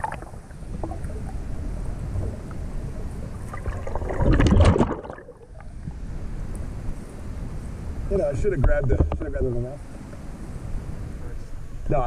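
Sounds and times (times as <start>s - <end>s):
water splashing: 0.0s - 6.0s
muffled underwater rumble: 0.0s - 12.0s.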